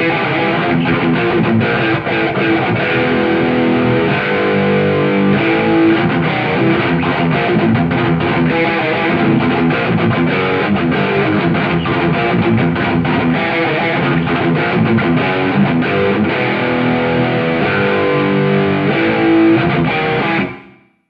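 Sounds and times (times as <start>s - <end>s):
distorted electric guitar riff: 0.0s - 21.0s.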